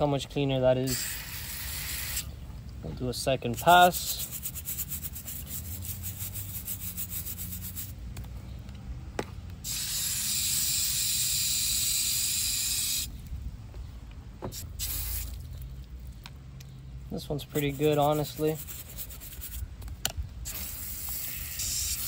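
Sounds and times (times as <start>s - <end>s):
hose nozzle spraying water: 0.9s - 2.3s, 9.6s - 13.1s, 14.6s - 15.4s, 20.4s - 22.0s
plastic brush scrubbing shell: 3.6s - 7.9s, 17.6s - 19.6s.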